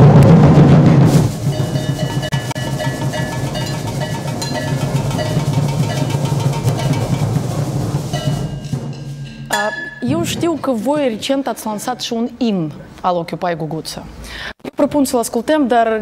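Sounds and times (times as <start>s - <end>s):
group drumming: 0.0s - 11.2s
sticks striking metal buckets: 1.1s - 11.3s.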